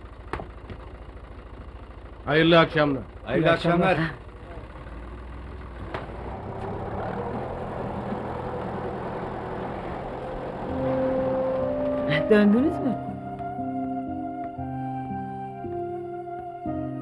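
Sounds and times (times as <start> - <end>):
vehicle engine running: 0.0 - 16.6
soft sustained music notes: 6.2 - 17.0.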